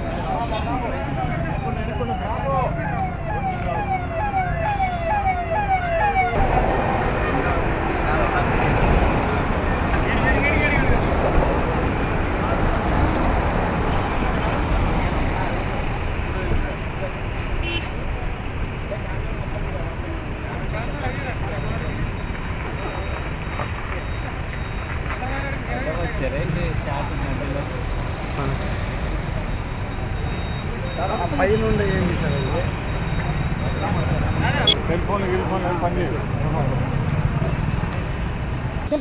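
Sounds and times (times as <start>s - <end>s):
vehicles driving at speed: 0.0s - 39.0s
siren fast repeating whoop: 0.7s - 6.4s.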